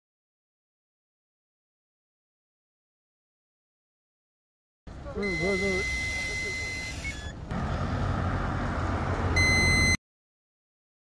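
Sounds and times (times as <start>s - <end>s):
two-note beep: 5.2s - 7.3s, 9.4s - 10.0s
device beeping: 5.2s - 7.4s, 9.4s - 10.0s
high electronic tone: 5.2s - 7.4s.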